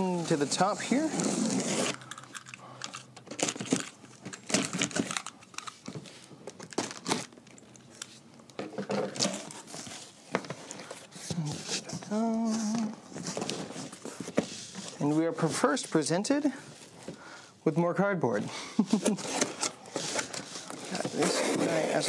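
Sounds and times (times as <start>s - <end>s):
packing tape being slit: 1.1s - 2.6s, 6.6s - 7.4s.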